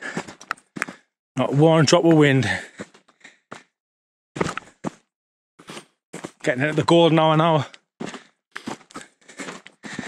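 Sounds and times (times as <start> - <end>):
footsteps crunching on gravel: 5.6 - 7.4, 8.0 - 10.0.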